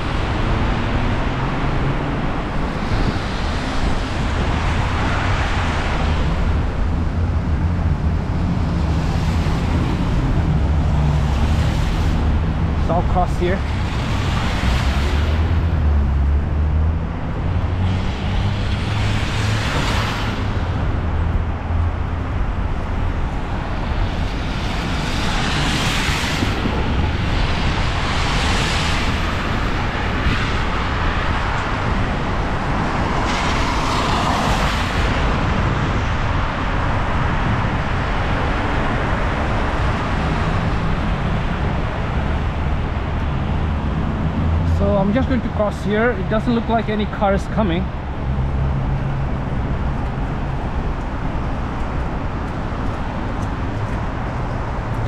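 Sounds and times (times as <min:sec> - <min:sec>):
cars passing on wet street: 0:00.0 - 0:55.0
steady low traffic rumble: 0:00.0 - 0:55.0.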